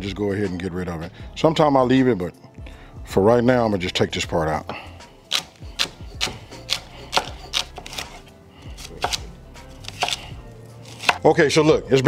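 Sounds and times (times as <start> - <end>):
knife chopping on wooden board: 4.7 - 11.3.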